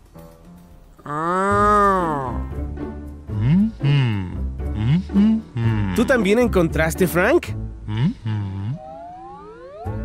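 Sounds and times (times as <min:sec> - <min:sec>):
soft background music: 0:00.0 - 0:10.0
cartoon voice humming mmm: 0:01.0 - 0:02.6, 0:03.3 - 0:06.0, 0:07.9 - 0:09.0.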